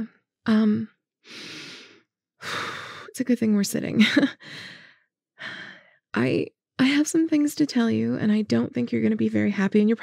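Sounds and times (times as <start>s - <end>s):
woman speaking: 0.0s - 0.9s, 3.1s - 4.3s, 6.2s - 10.0s
woman breathing: 1.2s - 3.1s, 4.4s - 6.0s.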